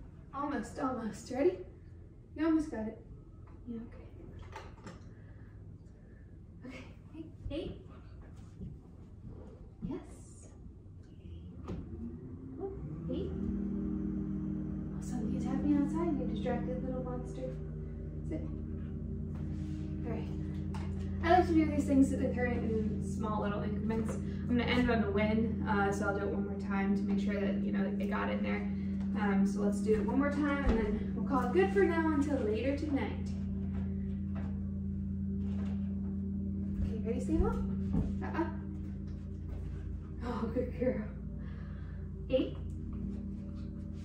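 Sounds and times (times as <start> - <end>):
steady low hum: 0.0 - 44.0.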